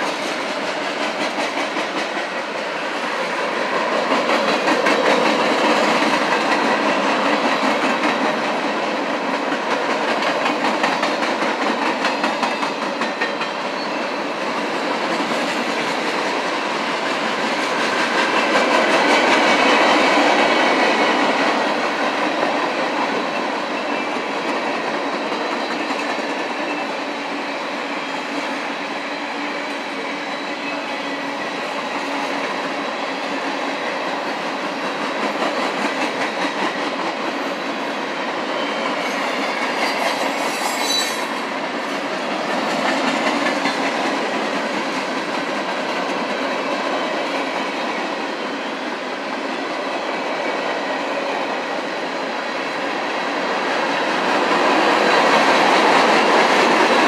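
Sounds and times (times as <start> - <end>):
freight train rolling by: 0.0 - 57.0.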